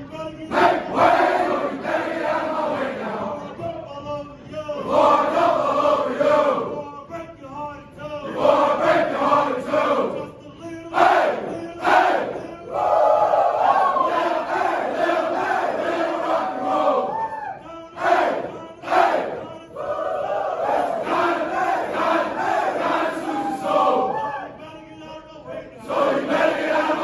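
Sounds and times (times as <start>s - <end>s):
soldiers chanting in unison: 0.5s - 3.6s, 4.8s - 6.8s, 8.2s - 10.3s, 10.9s - 17.3s, 17.9s - 24.6s, 25.5s - 27.0s.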